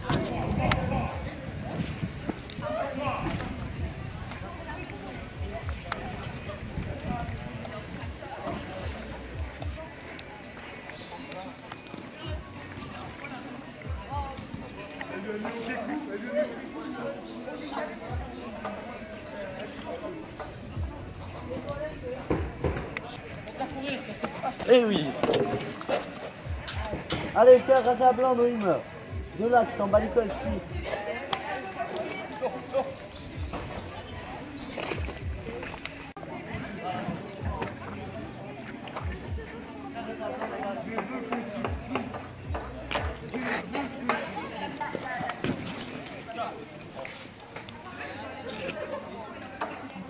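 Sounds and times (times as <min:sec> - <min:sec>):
people talking in background: 0:00.0 - 0:50.0.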